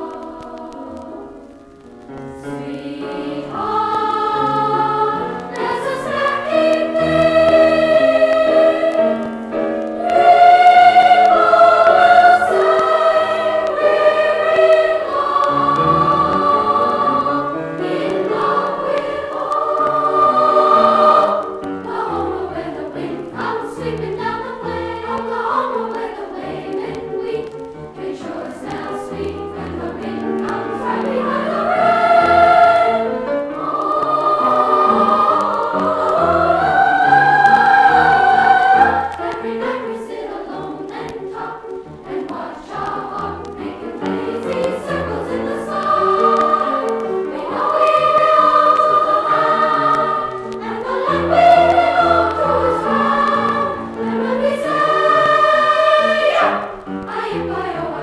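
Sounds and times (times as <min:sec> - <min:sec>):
choir singing on vinyl record: 0:00.0 - 0:58.0.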